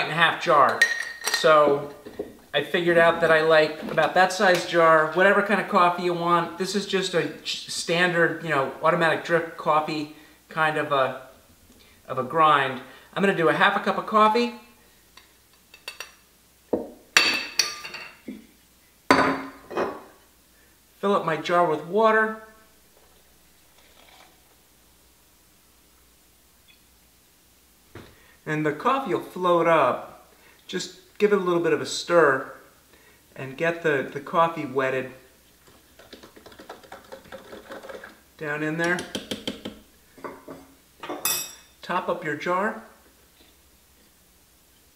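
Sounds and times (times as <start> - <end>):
metal and glass clinking: 0.7 - 1.5, 40.2 - 41.8.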